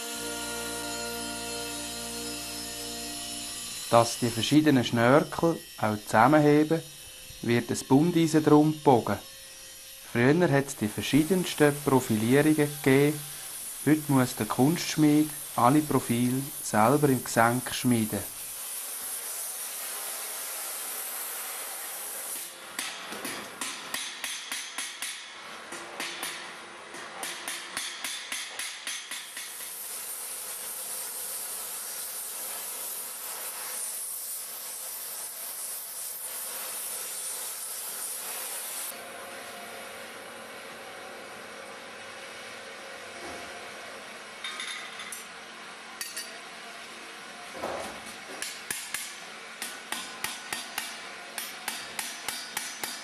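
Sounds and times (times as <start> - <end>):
torch hissing: 10.1 - 22.5.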